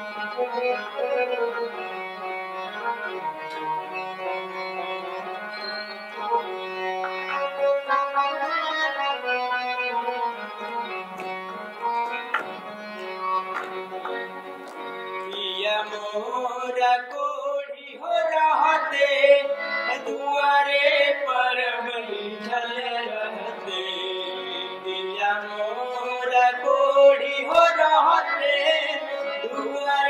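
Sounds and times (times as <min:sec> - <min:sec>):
harmonium playing: 0:00.0 - 0:30.0.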